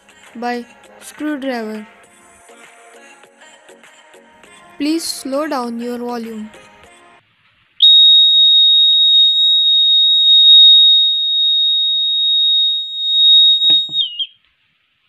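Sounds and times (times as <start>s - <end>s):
gas detector alarm buzzer: 7.8s - 14.3s.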